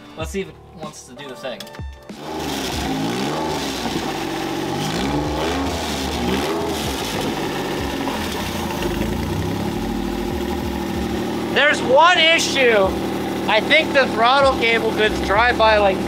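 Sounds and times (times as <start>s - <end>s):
car engine revving and idling: 2.1s - 16.0s.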